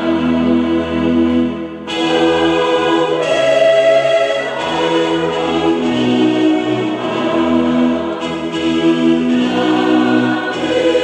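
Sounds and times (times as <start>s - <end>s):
choir singing held notes: 0.0s - 11.0s.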